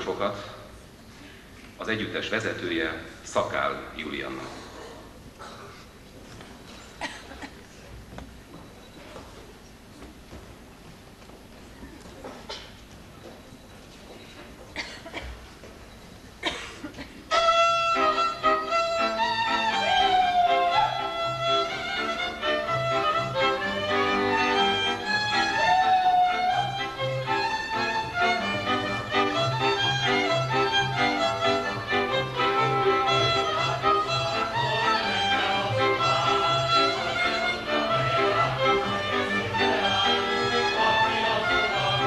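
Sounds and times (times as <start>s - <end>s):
folk string band dance tune: 17.3s - 42.0s.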